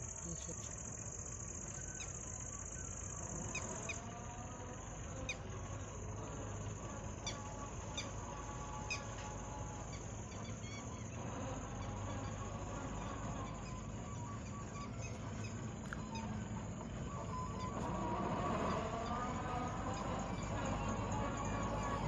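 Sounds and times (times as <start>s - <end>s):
high-pitched insect drone: 0.0s - 22.0s
vehicle engine hum: 0.0s - 22.0s.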